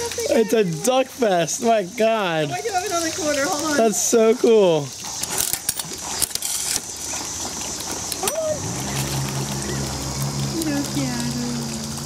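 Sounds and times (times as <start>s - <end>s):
steady low drone: 8.4s - 12.0s.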